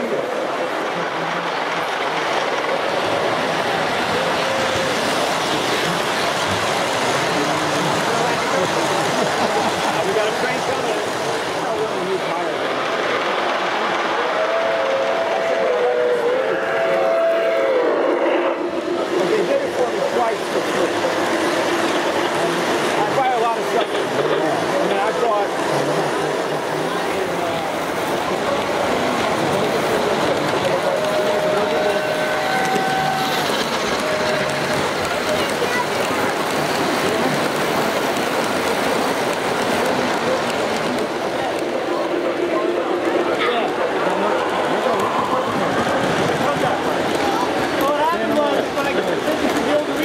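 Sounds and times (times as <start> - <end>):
people talking: 0.0 - 17.8, 18.4 - 50.0
crowd chatter: 0.0 - 50.0
model train wheels rumbling: 0.0 - 50.0.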